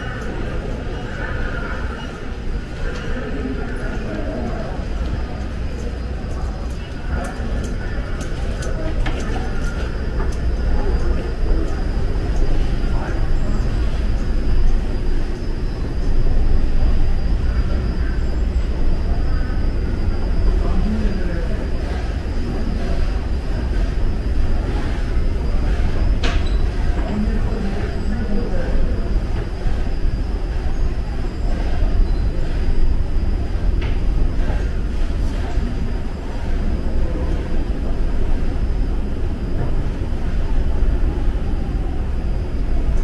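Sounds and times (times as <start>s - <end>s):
faint background voices: 0.0s - 43.0s
low rumble of machinery and trains: 0.0s - 43.0s.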